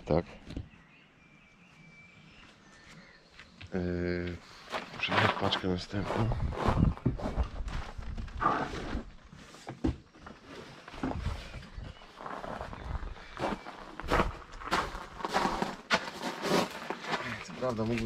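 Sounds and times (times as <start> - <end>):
footsteps on gravel: 4.3 - 9.1, 10.8 - 18.0.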